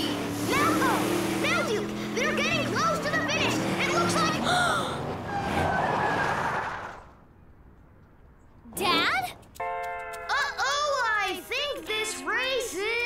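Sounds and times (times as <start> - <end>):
vehicle noise: 0.0 - 13.0.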